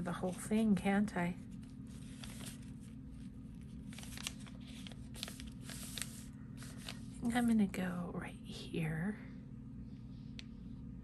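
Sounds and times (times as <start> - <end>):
steady low hum: 0.0 - 11.0
paper napkin crackling: 1.4 - 7.6.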